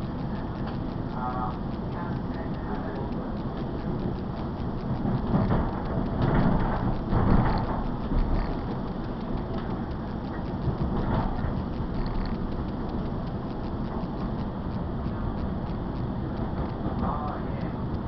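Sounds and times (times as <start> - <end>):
train wheels rumbling on rails: 0.0 - 18.0.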